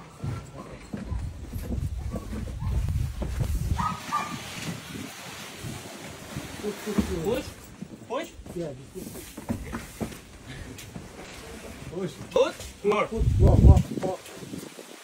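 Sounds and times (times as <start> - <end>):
hand truck rumbling on wooden floor: 0.0 - 5.0, 5.6 - 12.8.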